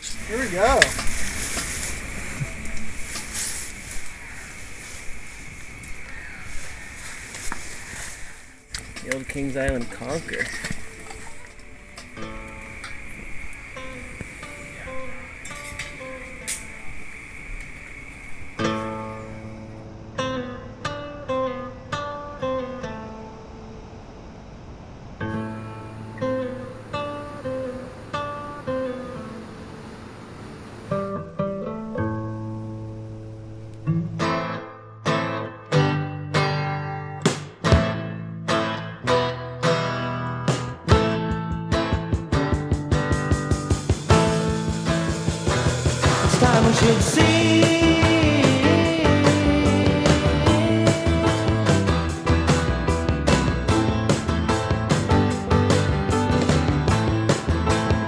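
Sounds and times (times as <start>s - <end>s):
acoustic guitar picking: 0.0s - 23.8s, 25.2s - 58.0s.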